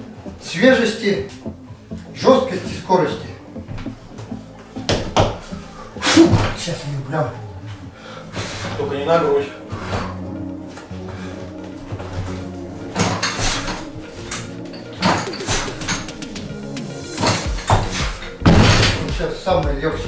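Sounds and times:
background music: 0.0 - 20.0
barbell thudding on platform: 17.2 - 19.1.

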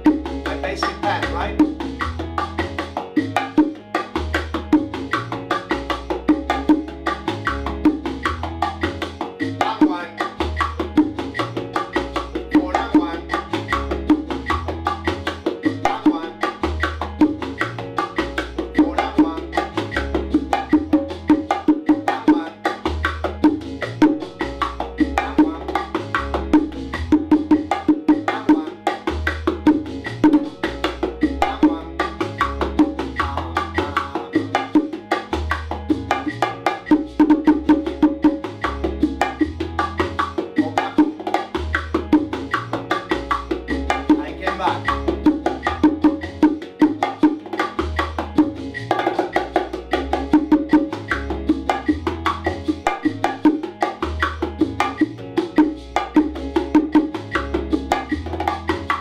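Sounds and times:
bongos playing: 0.0 - 59.0
salsa backing track: 0.0 - 59.0.

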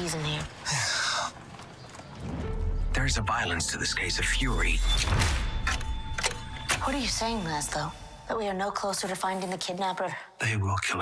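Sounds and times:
horse hooves clip-clopping: 1.4 - 2.5.

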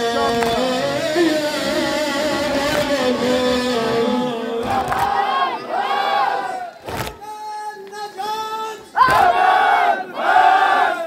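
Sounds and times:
mourning chant: 0.0 - 7.2.

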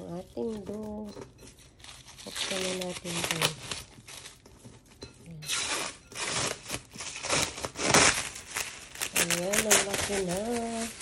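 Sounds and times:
plastic film crinkling: 0.0 - 11.0.

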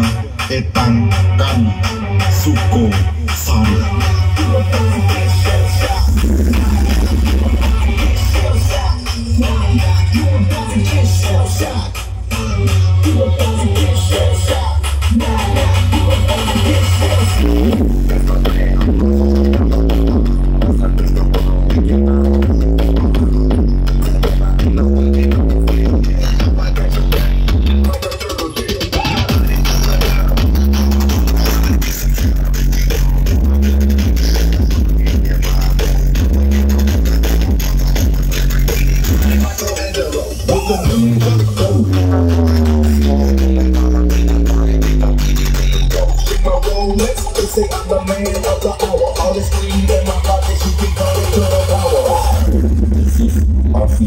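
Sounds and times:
electronic dance music: 0.0 - 54.0
falling bass sweeps: 29.3 - 39.5, 40.5 - 48.1.

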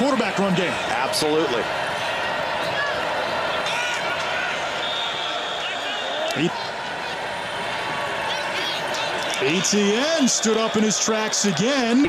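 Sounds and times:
crowd and field noise: 0.0 - 12.0.

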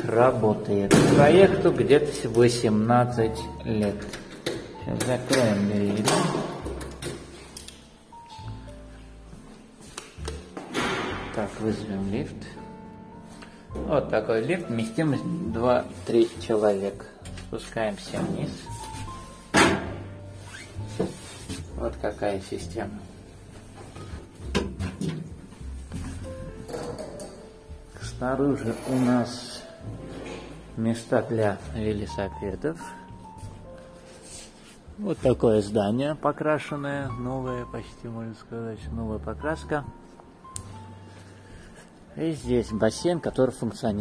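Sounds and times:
music playing: 0.0 - 44.0
door pulled shut with thud: 10.6 - 11.4, 19.5 - 20.0.

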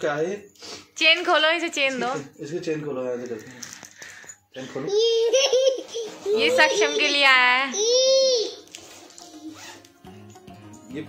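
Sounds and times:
quiet background music: 0.0 - 11.0
zipper rasping: 8.8 - 10.0.

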